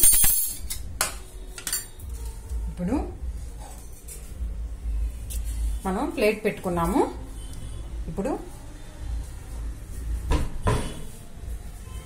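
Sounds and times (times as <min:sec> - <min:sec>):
metal clinking on steel plate: 0:00.0 - 0:02.0.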